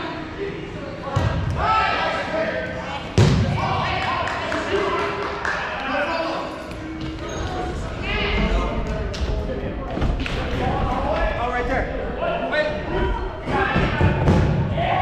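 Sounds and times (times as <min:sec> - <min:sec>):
players calling and chattering: 0:00.0 - 0:15.0
balls thudding on gym floor: 0:13.5 - 0:14.7.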